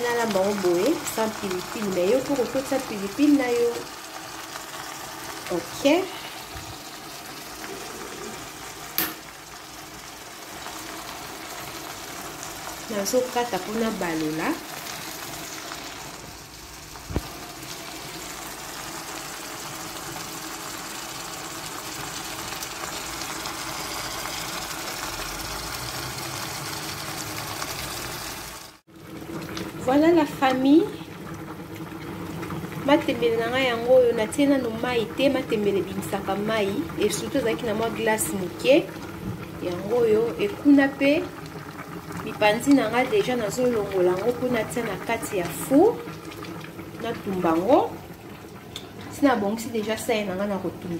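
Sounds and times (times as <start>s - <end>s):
vegetables hissing in a pot: 0.0s - 28.8s.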